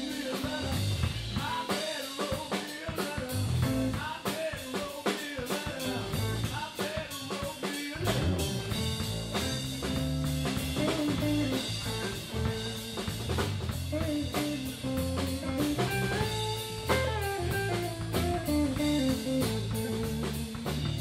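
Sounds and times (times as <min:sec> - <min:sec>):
bass guitar: 0:00.0 - 0:02.3, 0:02.9 - 0:04.1, 0:05.6 - 0:06.6, 0:08.0 - 0:21.0
drum kit: 0:00.0 - 0:21.0
guitar: 0:00.0 - 0:21.0.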